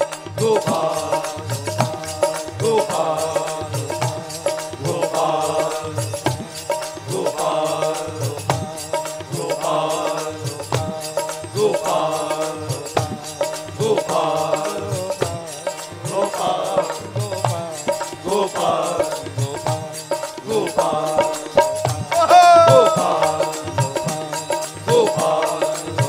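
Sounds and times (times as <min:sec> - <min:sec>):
harmonium: 0:00.0 - 0:26.0
men singing devotional chant: 0:00.0 - 0:26.0
steady drum beat: 0:00.0 - 0:26.0.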